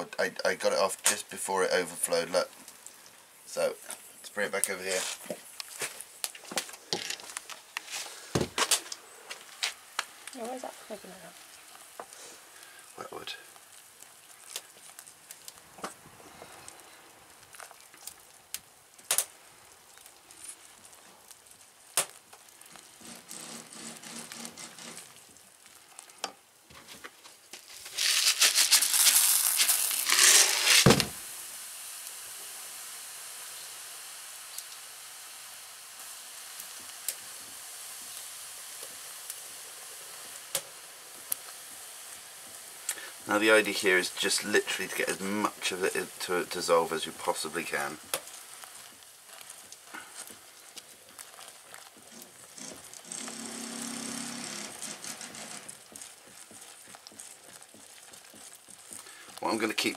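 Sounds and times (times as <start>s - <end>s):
hot liquid sizzling in saucepan: 0.0s - 59.9s
wooden spoon stirring: 19.9s - 30.8s, 41.1s - 59.9s.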